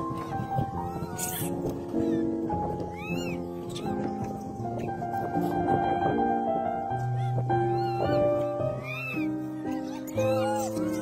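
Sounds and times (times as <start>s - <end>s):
background music with held notes: 0.0s - 11.0s
monkey call: 0.2s - 2.3s, 7.2s - 11.0s.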